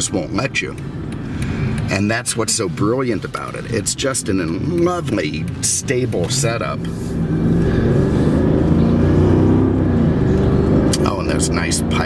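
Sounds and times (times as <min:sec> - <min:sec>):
car engine accelerating: 0:00.0 - 0:12.0.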